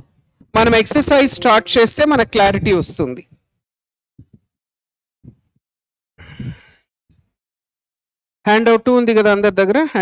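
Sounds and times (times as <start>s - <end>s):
man's breathy exhale: 6.2s - 6.9s.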